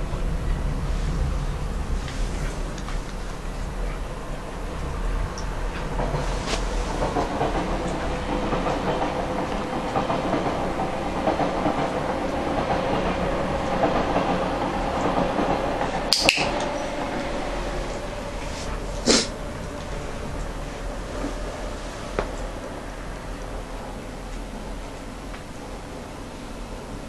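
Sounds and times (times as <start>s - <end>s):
steady background hum: 0.0s - 27.0s.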